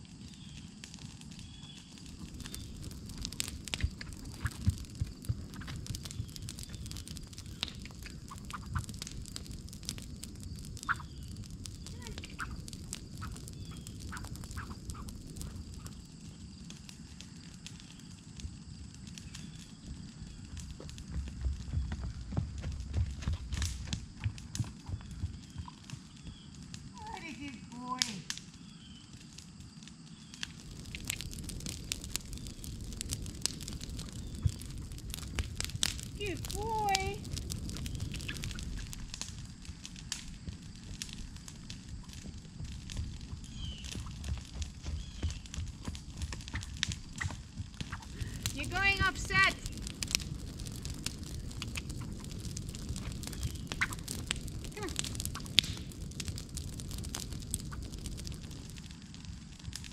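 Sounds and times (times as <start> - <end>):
wind rumble on microphone: 0.0 - 27.8, 28.6 - 59.9
fire crackling and popping: 0.0 - 59.9.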